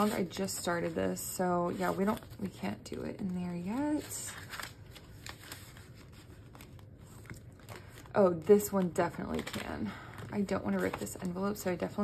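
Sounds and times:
paper and plastic rustling: 0:00.0 - 0:12.0.

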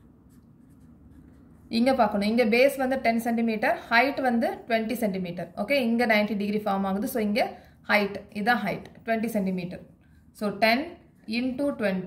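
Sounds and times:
pen scratching on paper: 0:00.0 - 0:03.0
person speaking: 0:00.3 - 0:12.0.

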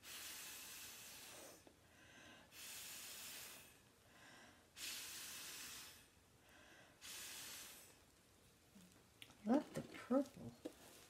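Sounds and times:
breath blown through a straw: 0:00.0 - 0:01.7, 0:02.4 - 0:03.8, 0:04.7 - 0:06.2, 0:06.8 - 0:08.0
quiet in-breaths: 0:00.0 - 0:08.2.

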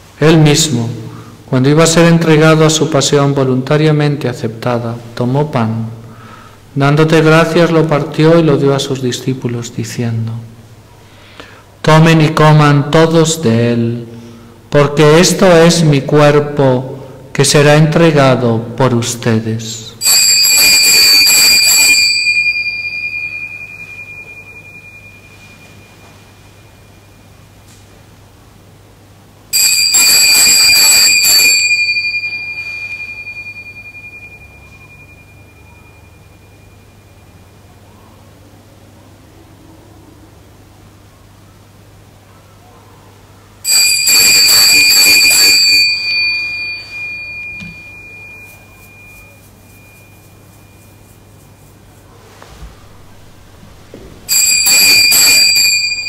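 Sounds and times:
altar bells ringing: 0:20.0 - 0:27.6, 0:29.6 - 0:37.8, 0:43.6 - 0:52.2, 0:53.6 - 0:56.0.

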